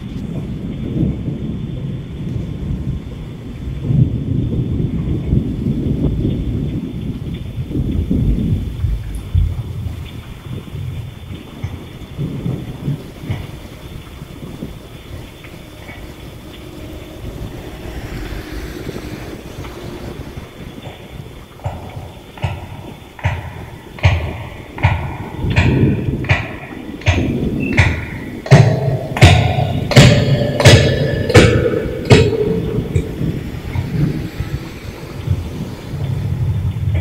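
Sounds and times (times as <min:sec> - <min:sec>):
steady rain: 0:00.0 - 0:37.0
thunder rumbling: 0:00.0 - 0:37.0.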